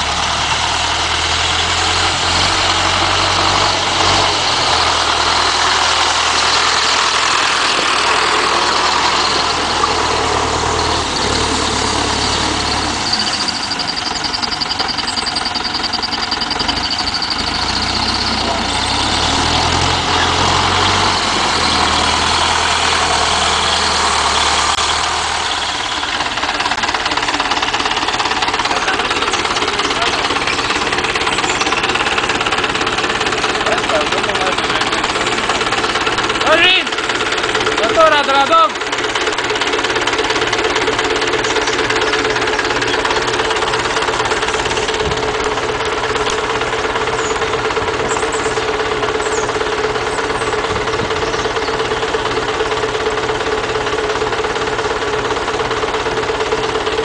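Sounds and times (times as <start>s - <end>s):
tractor engine running: 0.0s - 57.0s
thin high tone: 5.3s - 18.9s.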